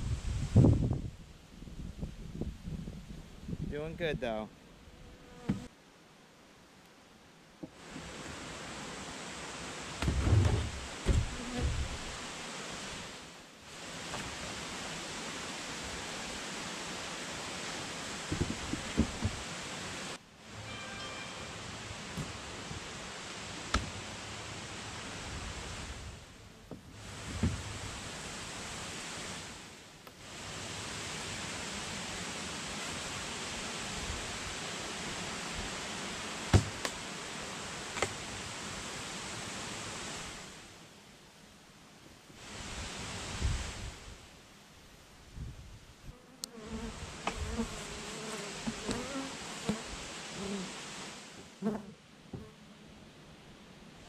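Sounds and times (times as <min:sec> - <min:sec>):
steady hiss: 0:00.0 - 0:54.0.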